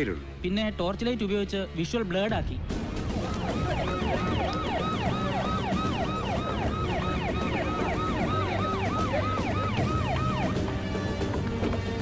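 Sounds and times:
vehicle siren yelping: 3.1 - 10.9.

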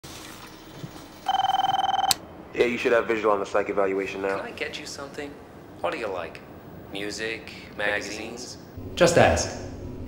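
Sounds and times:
electronic telephone ring: 1.3 - 2.2.

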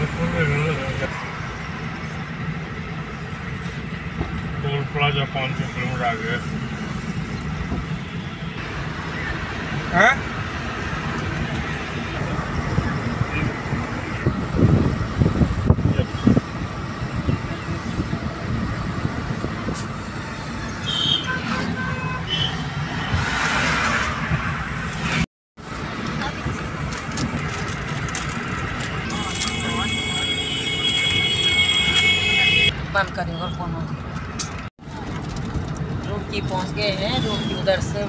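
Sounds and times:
road and engine noise in car: 0.0 - 38.0.

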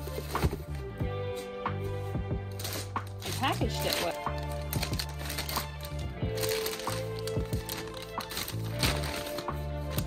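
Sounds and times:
background music with bass line: 0.0 - 10.0
plastic bag crinkling: 2.5 - 10.0
scissors cutting plastic: 2.5 - 10.0.

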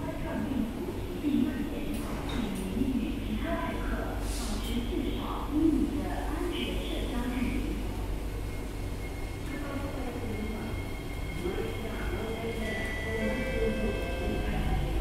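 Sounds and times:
stationary train humming: 2.6 - 15.0.

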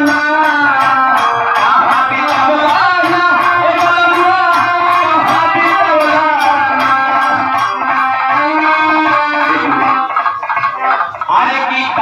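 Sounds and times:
live devotional folk music: 0.0 - 12.0
melodic instrument playing tune: 0.0 - 12.0.

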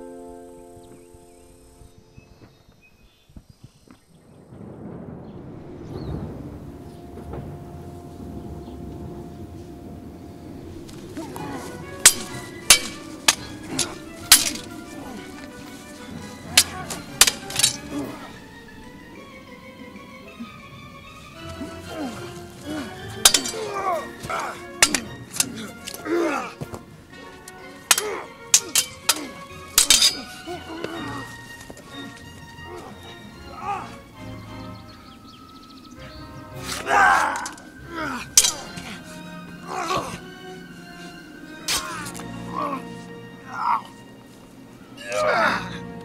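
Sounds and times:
background music: 0.0 - 2.6, 4.6 - 46.0
steady rumbling noise: 4.1 - 23.5
fighters shouting: 11.1 - 18.5, 21.5 - 26.6, 27.6 - 31.4, 32.0 - 34.0, 36.6 - 40.3, 45.0 - 45.8
metal weapons clashing: 11.2 - 18.4, 21.6 - 26.5, 27.4 - 31.4, 37.2 - 37.7, 38.3 - 39.1.

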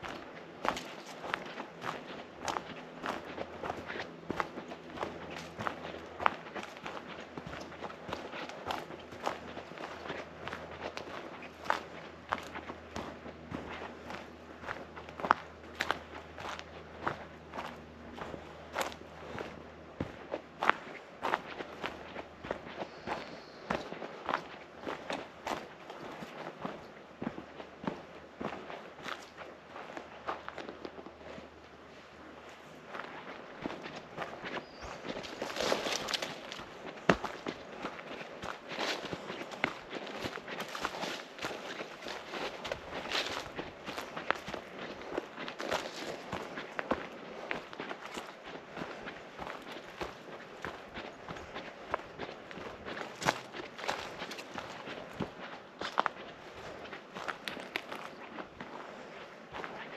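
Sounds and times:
footsteps crunching on dirt trail: 0.0 - 59.9.

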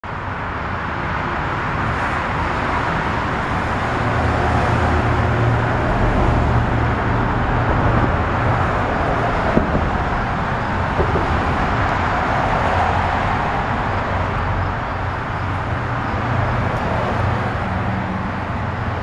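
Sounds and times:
road traffic noise: 0.0 - 19.0.

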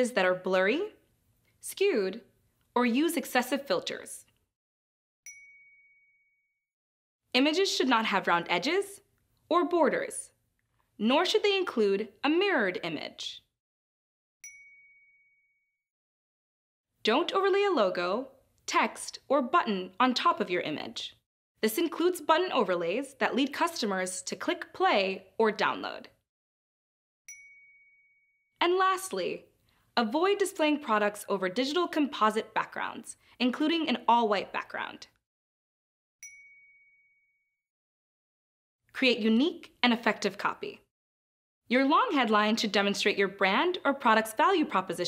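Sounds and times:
high chime ding: 5.3 - 6.4, 14.4 - 15.6, 27.3 - 28.4, 36.2 - 37.4.

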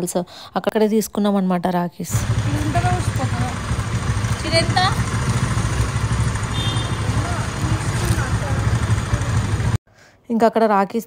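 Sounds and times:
traffic engine rumble: 2.1 - 9.8.

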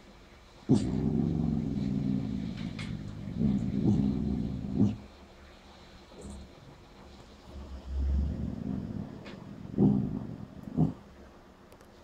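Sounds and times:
dog grumbling: 0.7 - 5.1, 7.6 - 11.2.

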